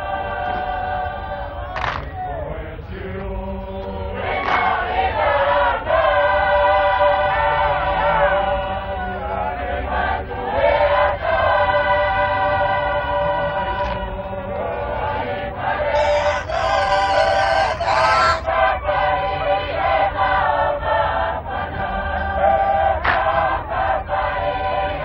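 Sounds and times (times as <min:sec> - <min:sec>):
choir chanting: 0:00.0 - 0:25.0.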